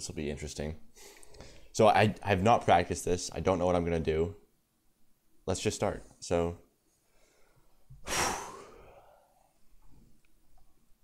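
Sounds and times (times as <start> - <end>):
man sighing: 8.0 - 9.4.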